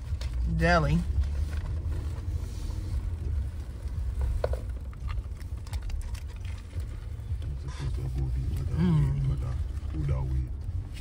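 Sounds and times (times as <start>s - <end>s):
car cabin rumble: 0.0s - 11.0s
person chewing: 4.6s - 9.2s.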